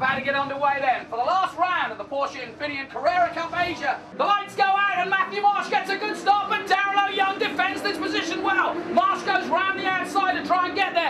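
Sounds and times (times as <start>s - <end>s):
man talking fast: 0.0s - 11.0s.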